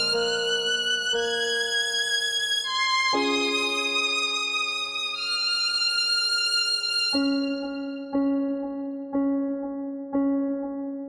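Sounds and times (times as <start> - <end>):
solo violin slow piece: 0.0 - 8.9.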